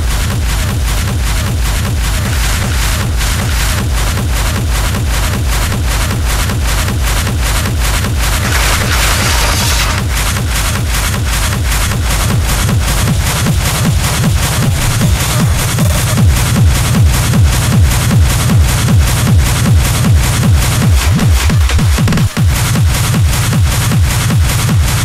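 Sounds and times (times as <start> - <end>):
fast kick drum: 0.0 - 25.0
hard techno music: 0.0 - 25.0.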